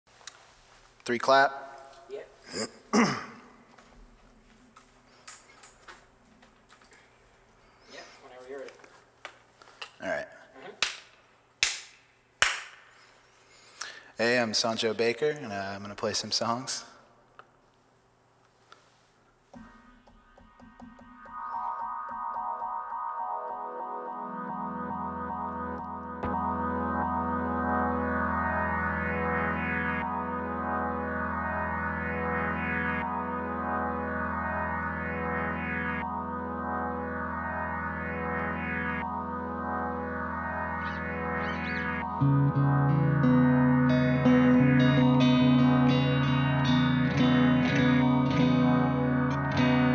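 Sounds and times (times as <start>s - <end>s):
sharp hand clap: 10.7s - 12.9s
synthesizer pad chords: 19.6s - 49.9s
steady low bass note: 23.4s - 49.9s.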